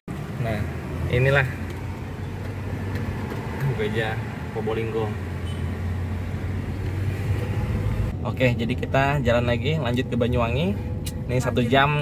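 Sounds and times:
car engine and road noise: 0.1 - 12.0.

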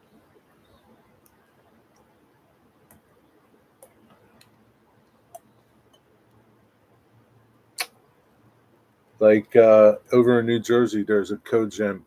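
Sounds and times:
faint clicks: 0.7 - 2.1, 3.8 - 6.5.

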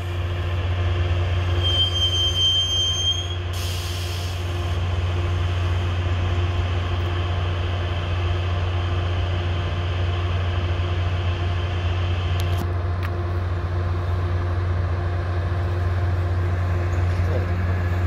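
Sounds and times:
diesel train idling drone: 0.0 - 18.0.

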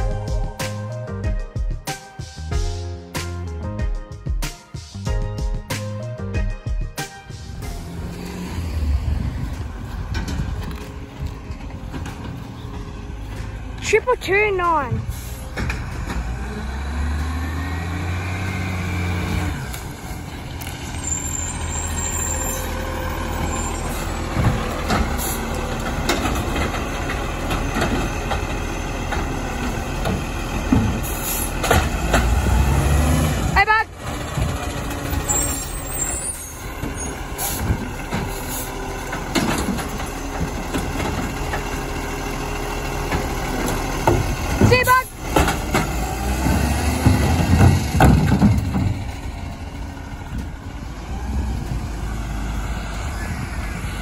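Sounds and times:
diesel truck engine running: 5.1 - 54.0.

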